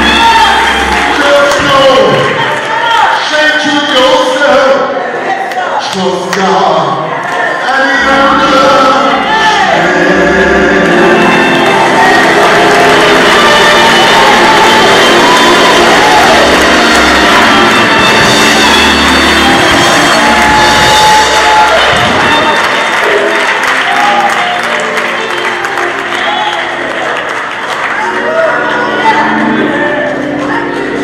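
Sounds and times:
piano: 0.0 - 2.4, 7.9 - 31.0
crowd applause and cheering: 0.0 - 31.0
man singing into a microphone: 7.7 - 11.4
organ: 7.8 - 31.0.

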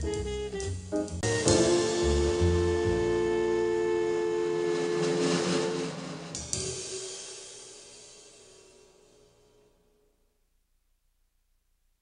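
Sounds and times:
band's final chord: 1.2 - 7.2.

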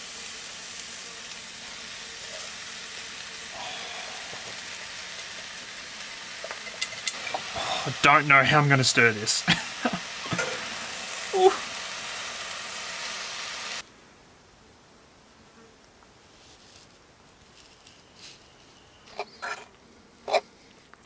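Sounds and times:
vegetables sizzling in a frying pan: 0.0 - 13.9.

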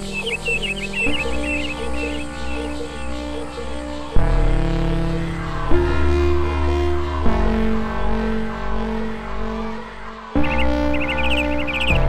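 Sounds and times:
low bass tone: 0.0 - 12.0
sustained synth drones: 0.0 - 12.0.

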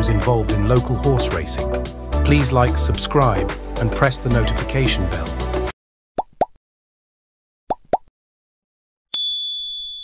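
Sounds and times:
bell ding: 9.1 - 10.0.

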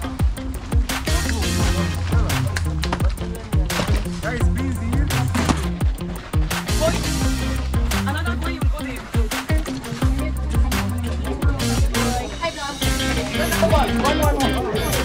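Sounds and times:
electronic music with heavy bass: 0.0 - 15.0
faint voices: 0.0 - 15.0.

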